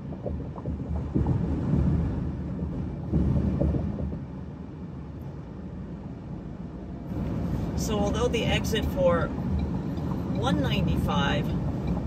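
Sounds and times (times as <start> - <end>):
car road noise rumble: 0.0 - 12.0.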